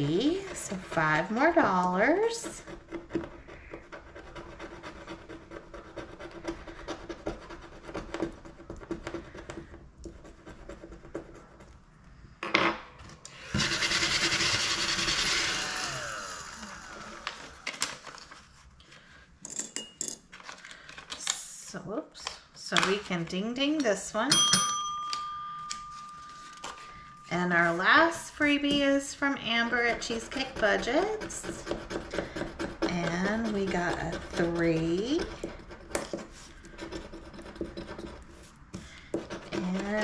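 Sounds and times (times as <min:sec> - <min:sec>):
scratcher rubbing scratch-off card: 0:28.6 - 0:38.5.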